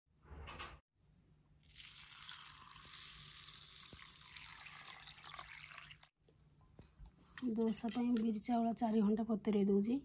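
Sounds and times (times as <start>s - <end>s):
water pouring onto grains: 1.6s - 6.1s.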